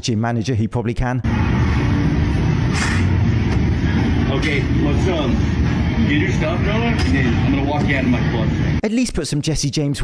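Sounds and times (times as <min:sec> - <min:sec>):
low rumble of room noise: 0:01.3 - 0:08.8.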